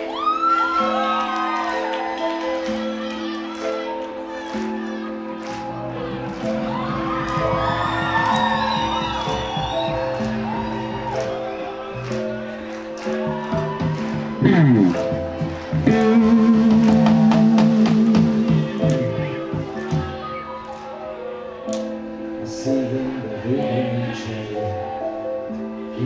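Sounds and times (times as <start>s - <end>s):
keyboard chords: 0.0s - 26.0s
drums: 6.2s - 11.4s, 13.0s - 20.4s
electric guitar: 13.0s - 20.9s.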